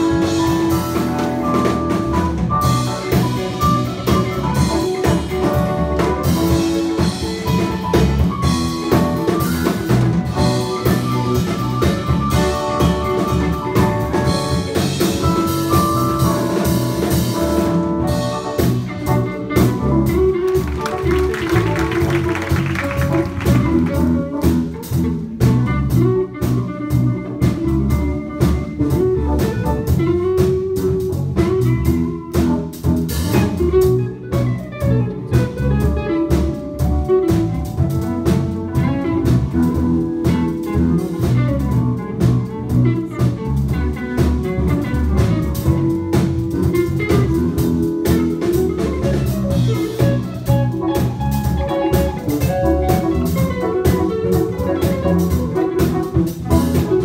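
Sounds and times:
drum kit: 0:00.0 - 0:57.0
electric bass: 0:00.0 - 0:57.0
electric guitar: 0:00.0 - 0:57.0.

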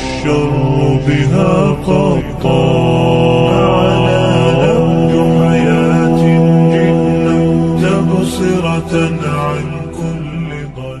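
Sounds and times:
low drone: 0:00.0 - 0:11.0
sustained singing voices: 0:00.0 - 0:11.0.

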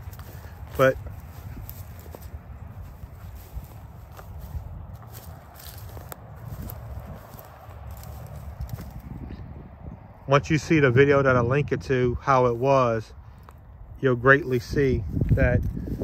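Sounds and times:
footsteps on dry grass: 0:00.0 - 0:16.0.

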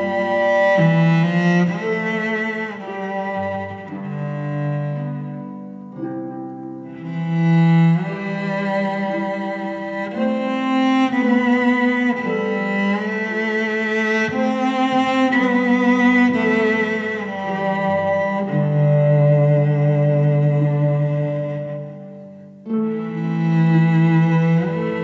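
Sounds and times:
cello and strings ballad: 0:00.0 - 0:25.0.

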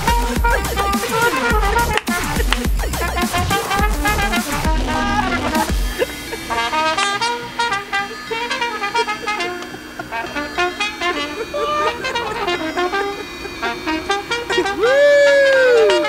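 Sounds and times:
trumpet playing lively tune: 0:00.0 - 0:16.0.

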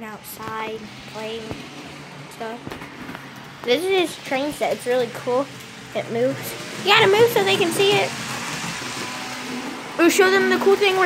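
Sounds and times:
model train running on track: 0:00.0 - 0:11.0.

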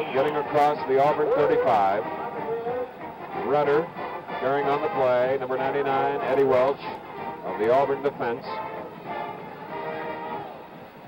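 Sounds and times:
band playing held notes: 0:00.0 - 0:11.0
crowd noise: 0:00.0 - 0:11.0.

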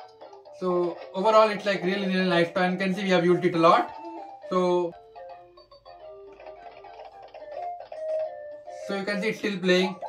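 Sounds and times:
electronic toy tune: 0:00.0 - 0:10.0.

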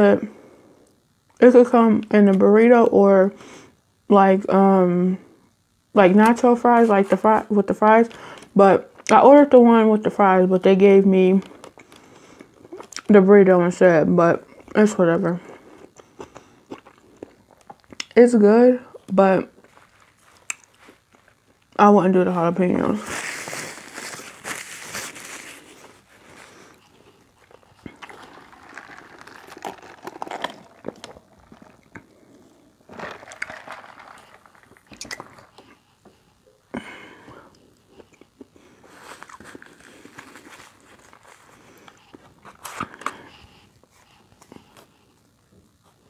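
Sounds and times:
person chewing food: 0:15.5 - 0:18.1, 0:19.6 - 0:21.7, 0:24.3 - 0:36.6, 0:37.5 - 0:43.2
wet mouth clicks: 0:34.9 - 0:35.7.

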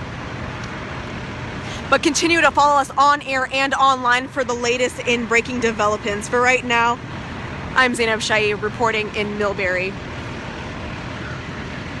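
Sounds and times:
fire engine diesel engines and pumps: 0:00.0 - 0:12.0.

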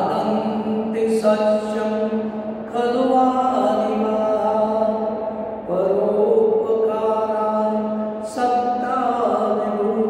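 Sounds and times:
man chanting verse: 0:00.0 - 0:10.0.

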